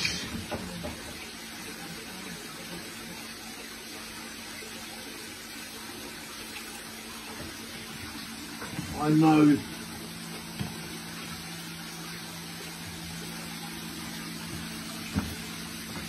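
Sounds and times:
water running in aquarium: 0.0 - 16.0.

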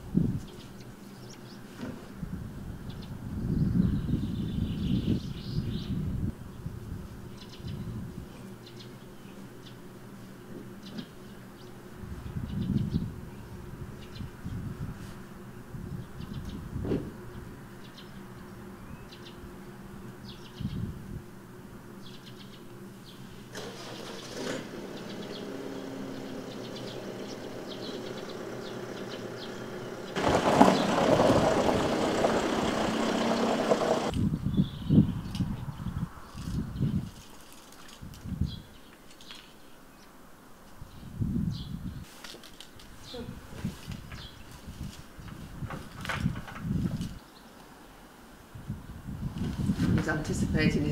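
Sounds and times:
small birds chirping: 0.4 - 1.8, 7.3 - 14.8, 15.4 - 21.0, 21.9 - 23.5, 24.8 - 37.1, 43.0 - 45.5
engine running: 23.3 - 34.2
low bumps and thumps: 27.4 - 34.1.

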